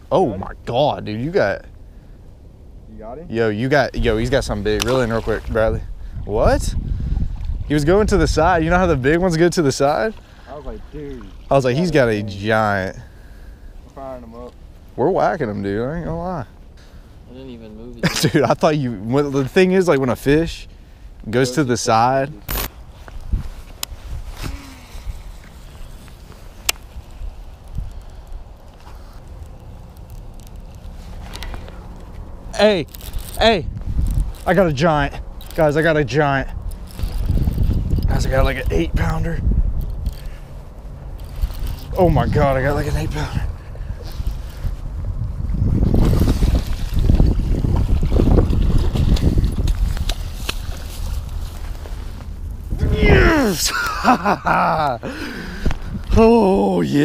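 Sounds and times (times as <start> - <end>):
wind rumble: 0.0 - 18.1, 18.9 - 57.0
rustling handling noise: 21.7 - 39.0, 45.8 - 54.4
microphone handling noise: 30.7 - 34.4, 43.4 - 53.5, 55.5 - 56.2
fishing reel winding: 32.8 - 33.4, 34.0 - 34.6, 36.6 - 38.7, 39.8 - 40.4, 41.2 - 42.0.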